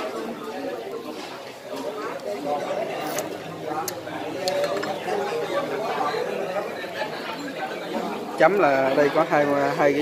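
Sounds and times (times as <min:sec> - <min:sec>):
diners chattering: 0:00.0 - 0:10.0.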